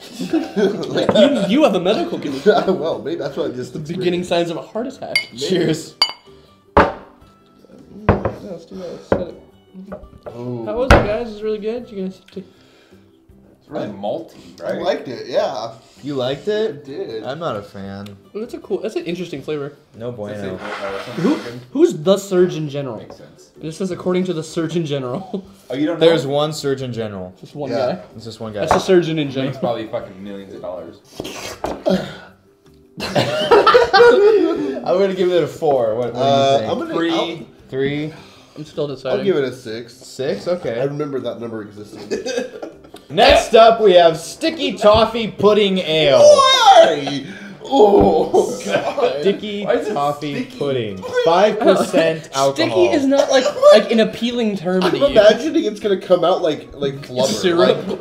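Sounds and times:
men laughing loudly: 0:00.0 - 0:02.8, 0:33.0 - 0:34.9, 0:41.9 - 0:43.1, 0:46.2 - 0:49.4, 0:51.0 - 0:54.1, 0:57.3 - 0:58.0
beer glasses clinking: 0:05.1 - 0:07.2.

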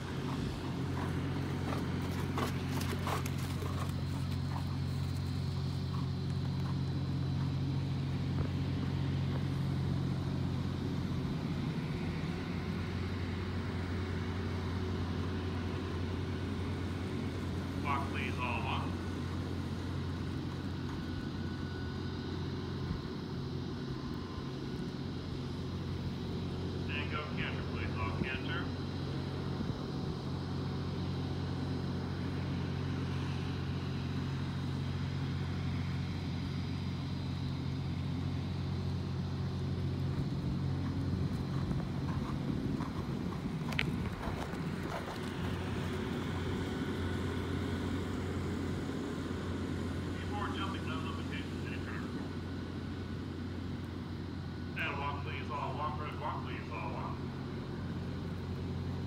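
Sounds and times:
low mechanical hum: 0:00.0 - 0:59.0
distant voice: 0:17.8 - 0:19.1, 0:26.8 - 0:28.8, 0:50.1 - 0:52.4, 0:54.7 - 0:57.3.

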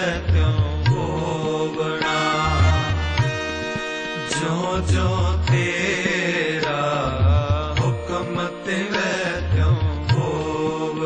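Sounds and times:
devotional hymn singing: 0:00.0 - 0:11.0
harmonium chords: 0:00.0 - 0:11.0
tabla beat: 0:00.0 - 0:11.0.

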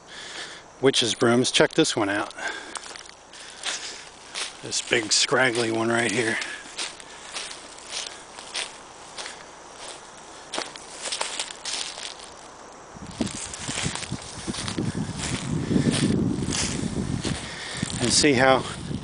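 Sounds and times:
footsteps rustling through brush: 0:01.1 - 0:19.0
low rumbling noise: 0:02.4 - 0:19.0.

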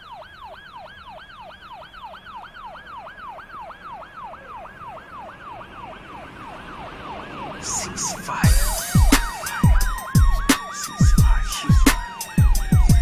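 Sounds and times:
electronic siren yelping: 0:00.0 - 0:13.0.

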